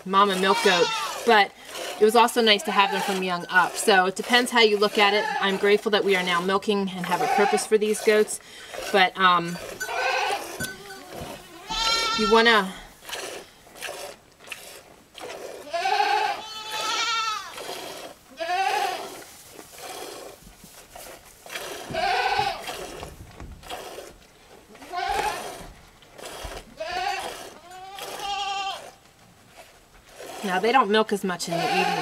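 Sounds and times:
goats bleating: 0.3 - 1.4, 2.1 - 5.8, 7.0 - 12.9, 15.6 - 17.6, 18.3 - 19.1, 21.9 - 22.7, 24.8 - 25.7, 26.8 - 28.9, 31.5 - 32.0.

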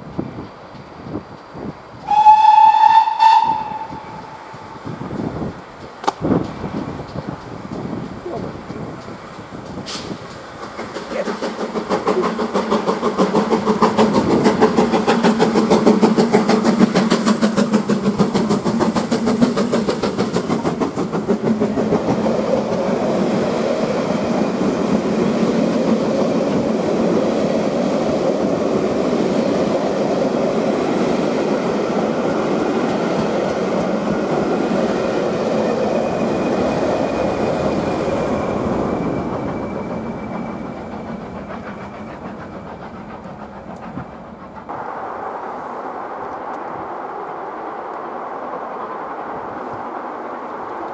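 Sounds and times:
steam locomotive exhaust beats: 0.0 - 46.8
diesel locomotive passing: 0.0 - 50.9
coaches clickety-clack: 5.1 - 23.2, 39.0 - 44.7.

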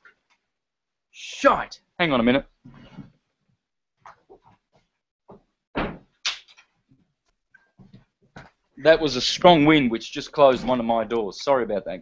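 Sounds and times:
door thuds: 5.7 - 6.1.

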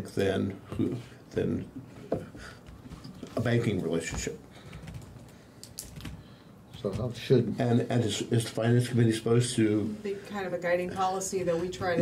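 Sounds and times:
laptop keyboard typing: 4.0 - 7.2
man speaking: 6.8 - 10.0.

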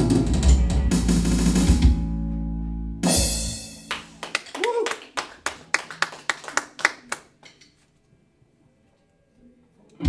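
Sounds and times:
people clapping: 3.9 - 7.6.

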